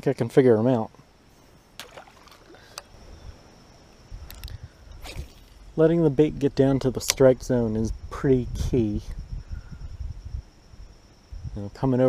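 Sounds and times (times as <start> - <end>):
low steady rumble: 1.0 - 12.0.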